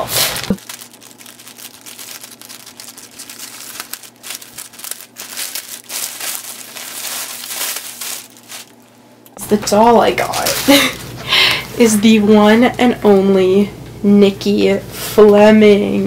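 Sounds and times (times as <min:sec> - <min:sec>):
plastic mailer bag crinkling: 0:00.0 - 0:08.8, 0:10.1 - 0:11.0
plastic wrapping rustling: 0:00.0 - 0:08.9, 0:09.5 - 0:11.2.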